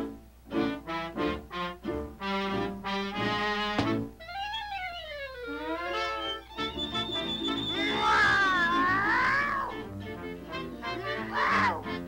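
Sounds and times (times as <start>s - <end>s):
background music: 0.0s - 12.0s
cartoon cat yowling: 4.2s - 5.8s, 7.7s - 9.9s, 11.2s - 12.0s.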